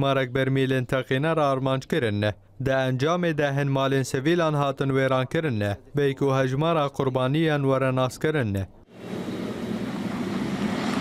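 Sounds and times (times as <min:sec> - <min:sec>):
low drone: 0:08.9 - 0:11.0
outdoor rushing noise: 0:08.9 - 0:11.0.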